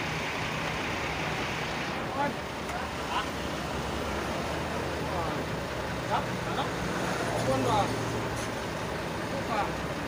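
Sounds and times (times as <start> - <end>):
road traffic rumble: 0.0 - 10.0
voices talking: 1.2 - 10.0.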